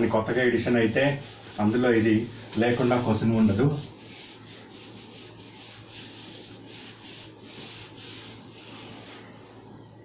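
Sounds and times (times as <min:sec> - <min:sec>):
eraser rubbing on whiteboard: 0:00.0 - 0:09.6.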